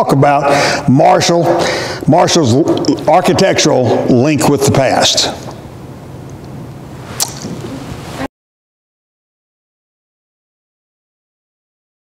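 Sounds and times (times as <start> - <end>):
low room noise: 0.0 - 8.3.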